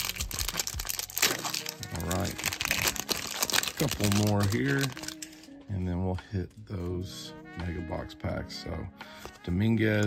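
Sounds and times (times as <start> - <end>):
foil wrapper crinkling: 0.0 - 5.5
background music: 0.0 - 10.0.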